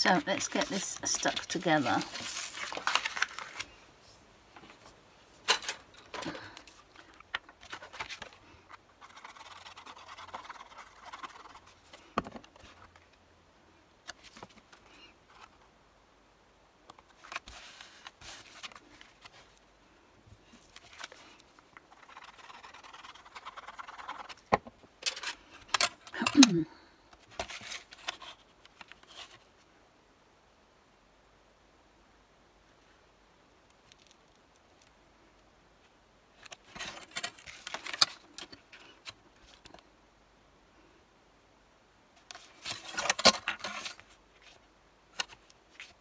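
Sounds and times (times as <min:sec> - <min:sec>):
card sheets sliding and rubbing: 0:00.1 - 0:05.4, 0:07.6 - 0:12.8, 0:17.1 - 0:19.6, 0:20.5 - 0:24.4.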